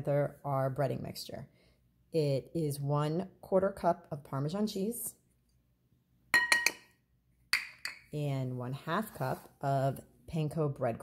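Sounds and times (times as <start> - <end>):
cup clinking on ceramic bowl: 6.4 - 7.0.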